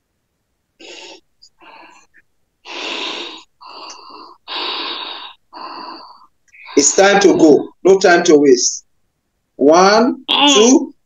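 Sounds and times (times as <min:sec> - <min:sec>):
person breathing hard: 0:00.8 - 0:07.2.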